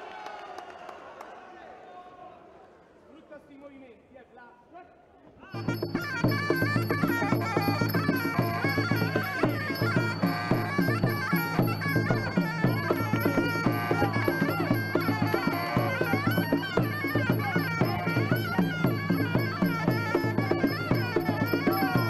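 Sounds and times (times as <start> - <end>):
reedy wind instrument melody: 5.5 - 22.0
steady drum beat: 5.6 - 22.0.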